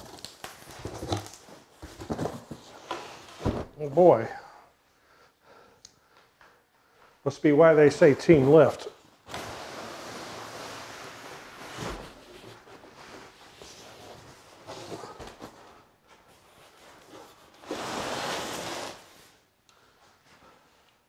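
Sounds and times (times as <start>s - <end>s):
packaging rustling: 0.0s - 3.3s.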